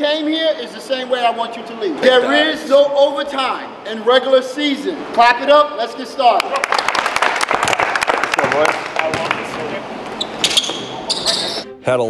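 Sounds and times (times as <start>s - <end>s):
hands clapping: 6.4s - 9.8s
ball bouncing on hardwood: 9.1s - 9.7s.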